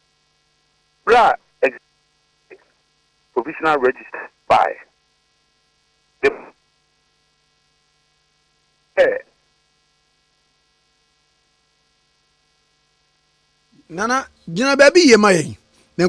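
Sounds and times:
faint electrical hum: 0.0s - 16.0s
person speaking over telephone: 1.1s - 1.8s, 3.3s - 4.9s, 9.0s - 9.3s, 13.9s - 15.6s.

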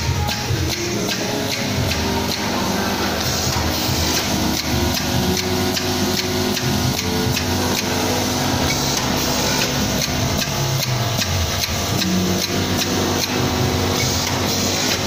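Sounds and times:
feeder machines humming: 0.0s - 15.0s
regular sharp clicks: 0.1s - 15.0s.

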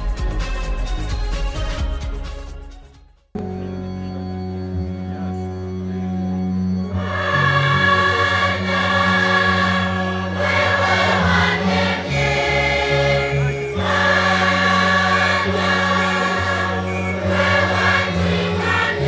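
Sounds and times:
held bass notes: 3.4s - 19.0s
choir singing a hymn: 6.9s - 19.0s.

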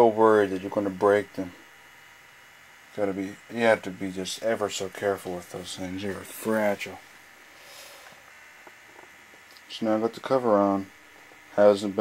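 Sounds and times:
faint hiss: 3.0s - 12.0s.

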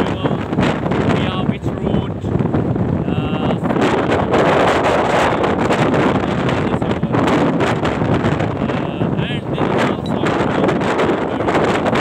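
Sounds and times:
road noise: 0.0s - 12.0s
wind buffeting microphone: 0.0s - 12.0s.

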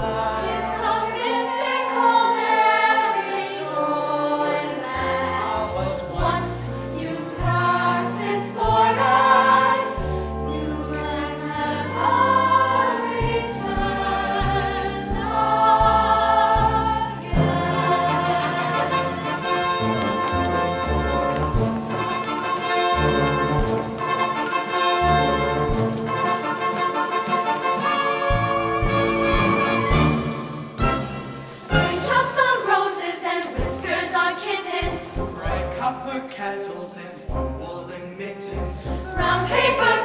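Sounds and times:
instrumental accompaniment: 0.0s - 32.8s
choir singing in harmony: 0.0s - 40.0s.

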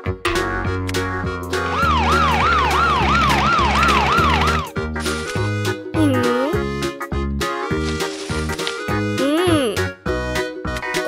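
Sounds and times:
children's background music: 0.0s - 11.0s
cartoon police siren wail: 1.6s - 4.7s.

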